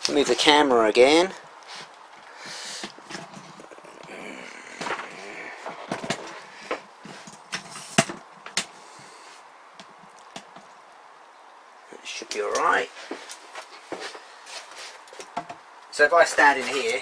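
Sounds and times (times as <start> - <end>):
faint rustling: 0.0 - 11.0, 11.9 - 17.0.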